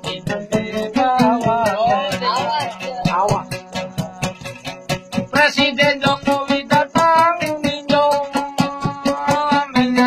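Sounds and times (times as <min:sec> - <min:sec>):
man singing ornamented melody: 0:00.0 - 0:10.0.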